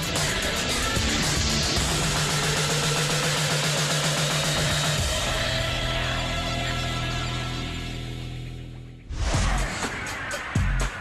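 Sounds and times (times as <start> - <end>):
tv theme music with pulsing bass: 0.0 - 11.0.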